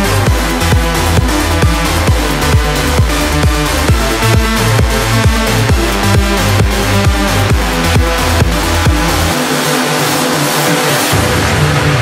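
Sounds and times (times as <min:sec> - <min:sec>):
electronic dance music with deep bass: 0:00.0 - 0:12.0.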